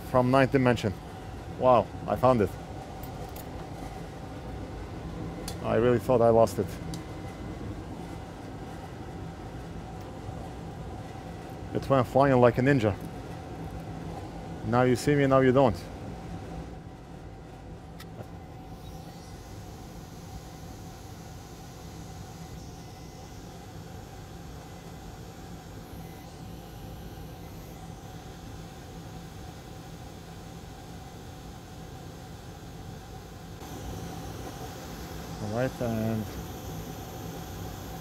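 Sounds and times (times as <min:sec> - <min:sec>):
fume extractor fan whirring: 0:00.0 - 0:38.0.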